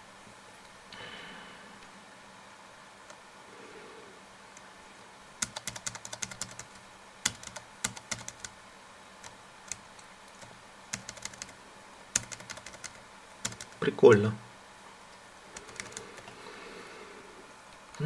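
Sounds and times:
computer keys clicking: 5.4s - 8.5s, 9.2s - 14.2s, 15.5s - 16.4s.

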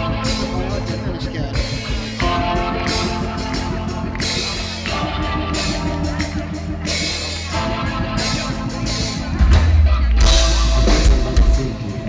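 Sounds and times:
live rock band playing: 0.0s - 12.0s
sustained guitar chords: 0.0s - 12.0s.

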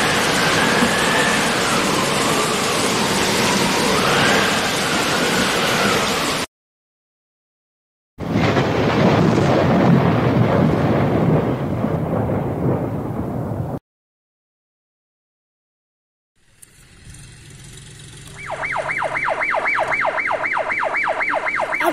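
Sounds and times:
diesel engine rumble: 16.4s - 20.6s.

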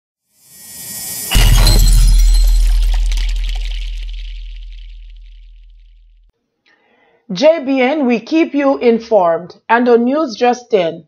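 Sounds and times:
bright tinkling: 0.4s - 5.9s
deep low boom hit: 0.9s - 6.2s.

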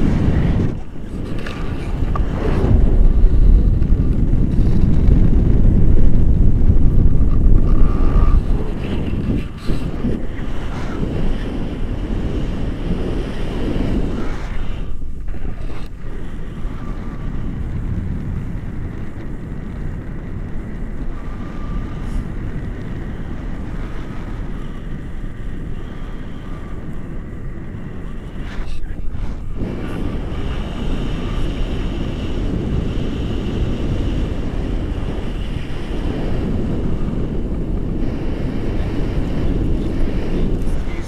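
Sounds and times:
wind rushing over microphone: 0.0s - 41.0s.

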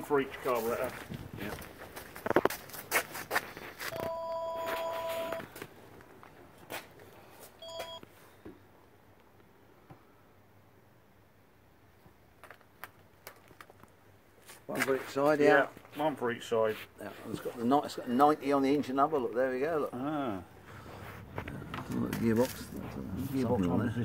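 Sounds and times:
two-tone electronic beep: 3.9s - 5.4s, 7.6s - 8.0s.

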